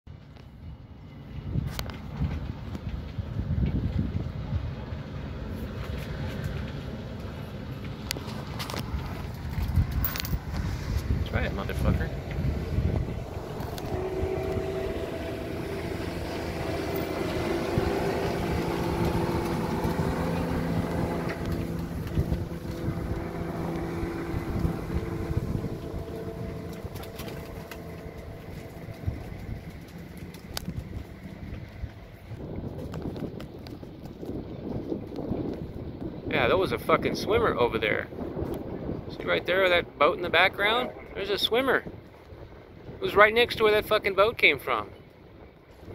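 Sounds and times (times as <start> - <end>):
motorboat engine passing: 0.2 - 45.9.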